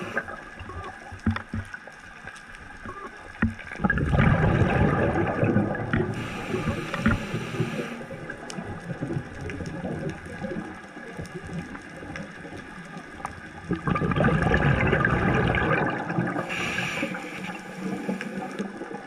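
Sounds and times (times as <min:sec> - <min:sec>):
underwater exhaled bubbles gurgling: 0:00.0 - 0:19.0
higher hiss: 0:06.2 - 0:08.1, 0:16.4 - 0:18.6.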